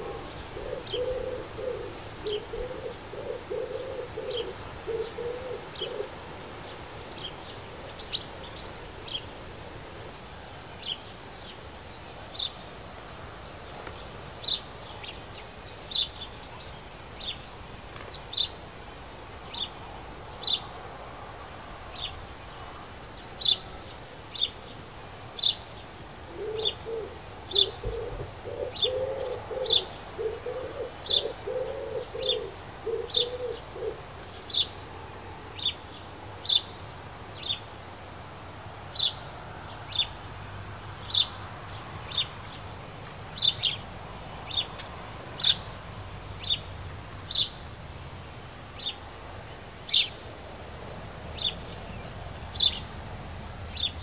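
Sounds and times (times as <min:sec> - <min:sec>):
dove cooing: 0:00.0 - 0:06.2, 0:26.3 - 0:34.1.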